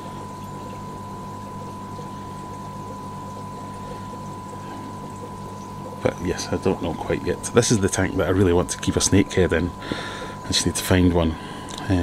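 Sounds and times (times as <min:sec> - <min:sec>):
moving water: 0:00.0 - 0:12.0
thin constant whine: 0:00.0 - 0:12.0.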